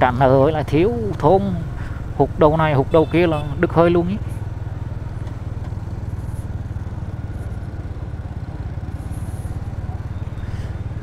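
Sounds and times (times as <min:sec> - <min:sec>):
motorbike engine cruising: 0:00.0 - 0:11.0
road and wind noise: 0:00.0 - 0:11.0.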